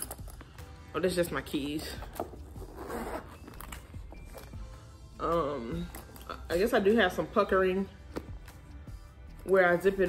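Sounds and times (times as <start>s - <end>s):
zipper rasping scrape: 2.1s - 4.4s.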